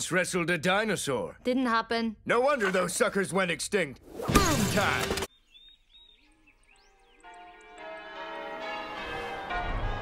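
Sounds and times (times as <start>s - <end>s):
faint bird chirps: 5.3s - 7.6s
church bells ringing: 7.2s - 10.0s.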